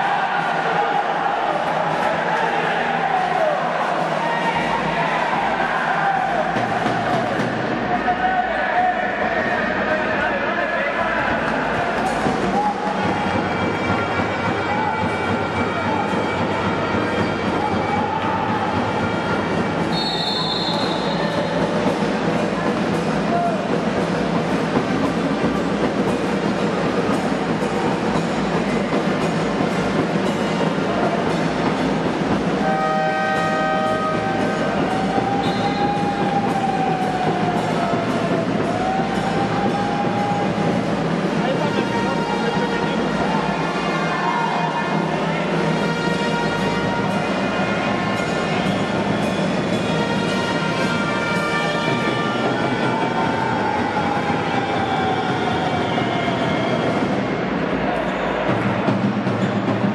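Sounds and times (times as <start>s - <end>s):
indistinct crowd voices: 0.0s - 59.9s
referee's whistle blast: 19.9s - 21.5s, 35.4s - 36.3s.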